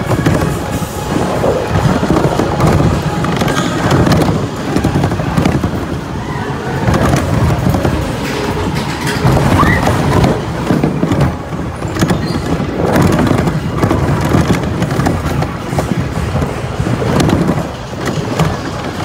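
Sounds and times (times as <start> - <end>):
roller coaster rumbling on track: 0.0 - 19.0.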